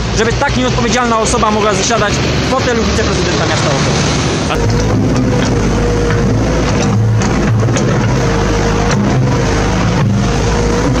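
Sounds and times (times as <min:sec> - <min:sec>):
road traffic noise: 0:00.0 - 0:11.0.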